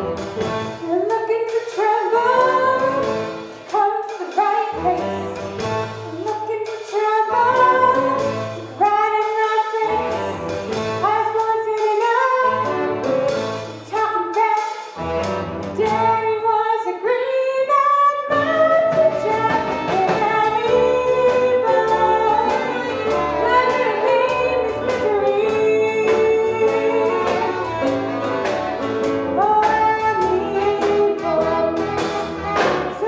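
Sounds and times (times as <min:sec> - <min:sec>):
small band playing: 0:00.0 - 0:16.6, 0:18.1 - 0:33.0
woman singing: 0:00.8 - 0:15.0, 0:15.7 - 0:33.0.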